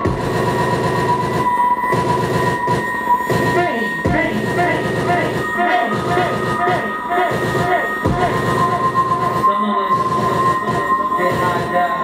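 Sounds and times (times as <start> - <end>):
distorted electronic noise music: 0.0 - 12.0
high electronic drone: 0.0 - 12.0.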